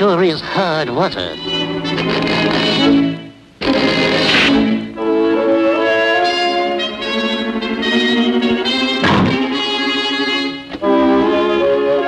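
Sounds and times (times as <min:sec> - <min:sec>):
orchestral violins holding chord: 0:00.0 - 0:12.0.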